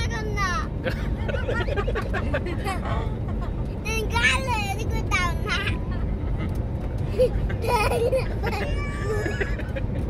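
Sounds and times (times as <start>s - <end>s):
young child's high-pitched voice: 0.0s - 0.7s, 3.8s - 5.8s
airliner cabin drone: 0.0s - 10.0s.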